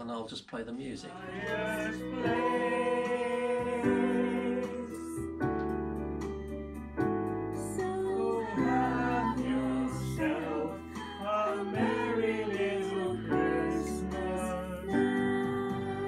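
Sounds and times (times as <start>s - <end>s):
group of people singing: 1.2s - 5.3s, 7.8s - 16.0s
electronic keyboard chords: 1.5s - 16.0s.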